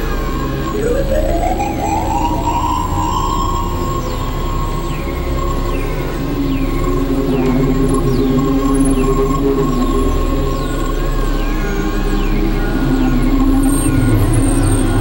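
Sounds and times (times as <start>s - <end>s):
gliding synthesizer tone: 0.0s - 15.0s
low synthesizer drones: 0.0s - 15.0s
wavering lower tone: 0.0s - 15.0s.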